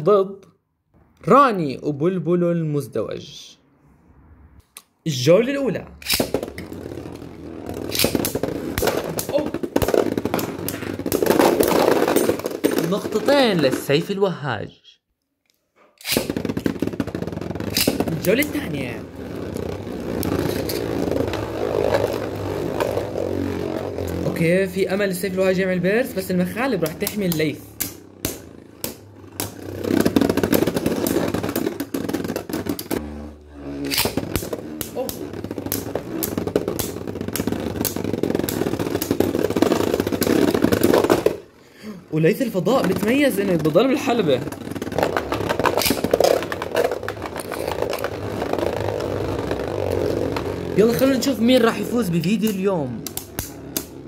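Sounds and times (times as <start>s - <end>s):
spinning tops clacking together: 6.0s - 6.4s, 7.9s - 13.4s, 16.0s - 18.5s, 52.5s - 54.0s
spinning tops rattling in plastic bowl: 6.0s - 14.1s, 16.0s - 54.0s.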